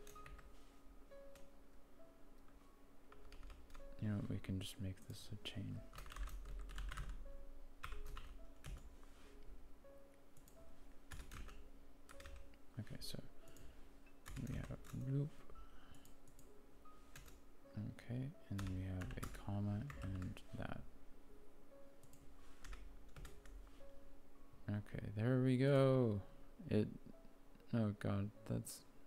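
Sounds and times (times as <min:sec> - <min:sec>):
typing on computer keyboard: 0:00.0 - 0:00.5, 0:03.1 - 0:03.8, 0:05.9 - 0:07.2, 0:07.8 - 0:08.9, 0:10.4 - 0:12.5, 0:14.2 - 0:15.0, 0:17.1 - 0:17.4, 0:18.6 - 0:20.4, 0:22.0 - 0:23.6.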